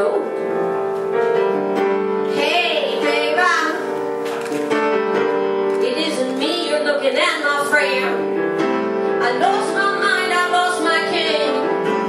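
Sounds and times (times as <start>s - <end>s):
upright piano chords: 0.0s - 12.0s
woman singing with vibrato: 5.8s - 8.2s, 9.2s - 11.7s.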